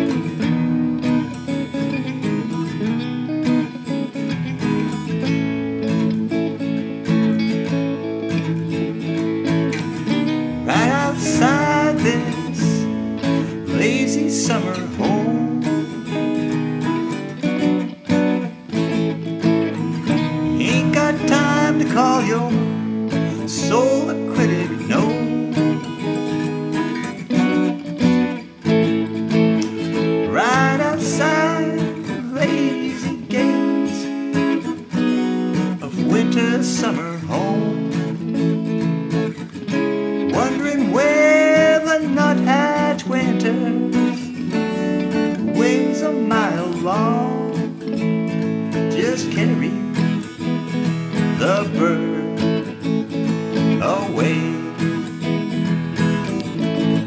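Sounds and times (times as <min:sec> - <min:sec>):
acoustic guitar strumming chords: 0:00.0 - 0:57.0
electric guitar lead with bends: 0:00.0 - 0:57.0.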